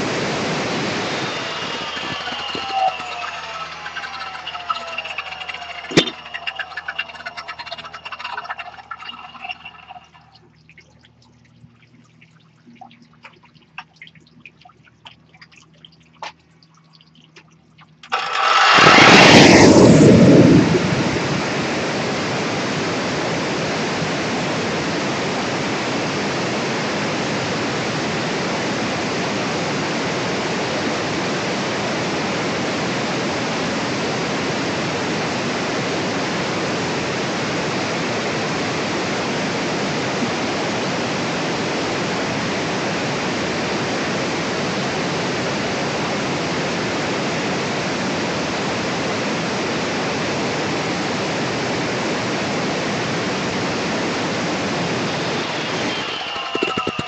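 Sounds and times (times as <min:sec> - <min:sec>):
angle grinder cutting brick: 0:00.8 - 0:10.2, 0:18.1 - 0:19.4, 0:55.5 - 0:57.0.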